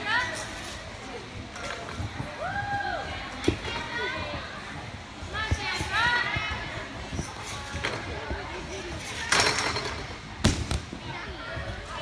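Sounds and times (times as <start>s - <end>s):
gym chatter: 0.0s - 12.0s.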